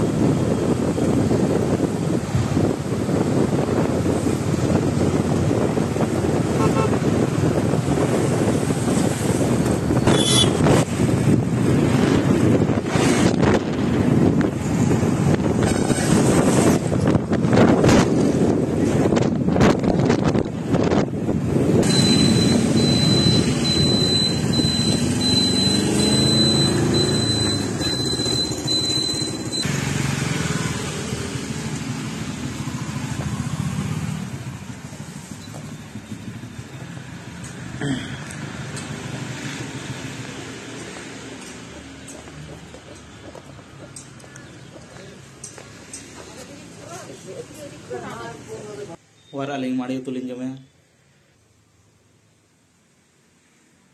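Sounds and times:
wind buffeting microphone: 0.0s - 21.9s
road noise: 0.0s - 53.9s
motorcycle engine: 21.8s - 40.2s.

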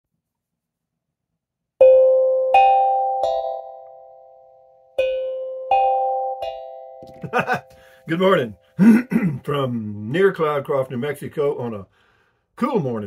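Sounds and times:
three-note bell chime: 1.8s - 8.7s.

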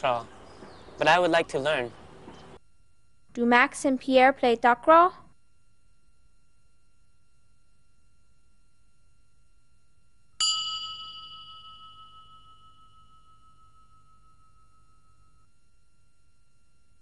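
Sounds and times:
bell-like chime: 10.4s - 15.6s.

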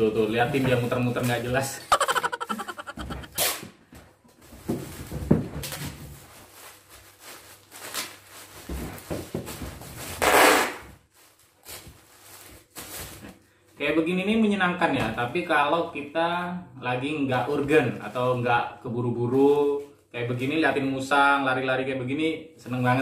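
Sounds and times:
packing tape crackling off roll: 4.9s - 13.3s.

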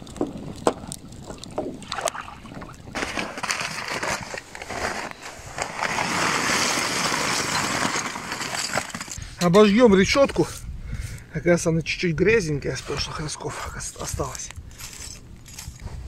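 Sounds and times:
charcoal rattling pour: 2.9s - 9.2s.

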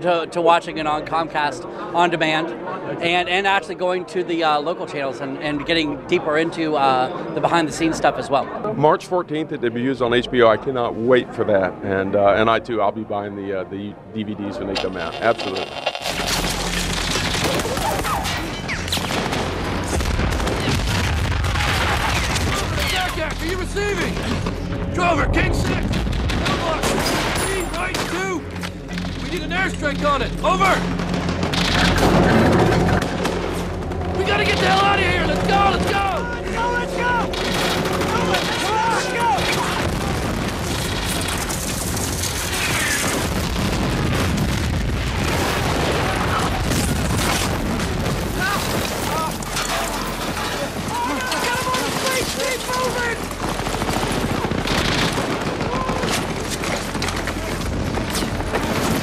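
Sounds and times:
explosions: 15.2s - 59.0s
machine-gun and rifle fire: 15.4s - 24.8s, 25.8s - 59.0s
gunfire: 16.1s - 24.9s, 25.6s - 59.0s
men shouting: 34.1s - 40.1s, 50.8s - 53.1s
men calling out: 34.2s - 37.4s, 38.0s - 40.0s.

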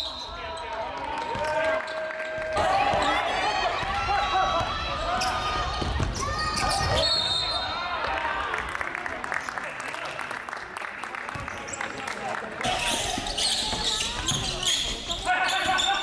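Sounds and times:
sneakers squeaking: 4.6s - 7.7s, 12.6s - 16.0s.

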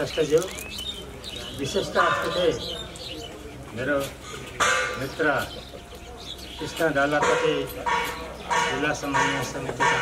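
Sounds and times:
birds calling: 0.0s - 10.0s.

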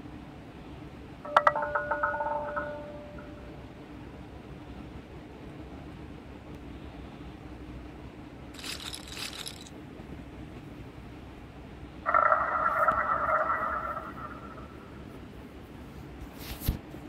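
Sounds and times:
chime of held tones: 1.3s - 3.6s
chip clatter rattle: 8.5s - 9.7s.

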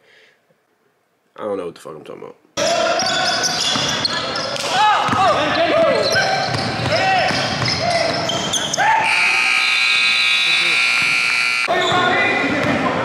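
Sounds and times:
sneakers squeaking on court: 3.0s - 8.8s
basketball bouncing: 5.0s - 8.6s, 10.8s - 12.9s
scoreboard buzzer long tone: 9.0s - 11.7s.

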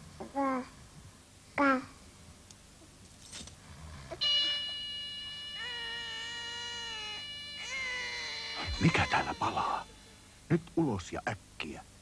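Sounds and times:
high wailing cry: 4.2s - 10.4s
smoke alarm tone: 4.2s - 10.4s.

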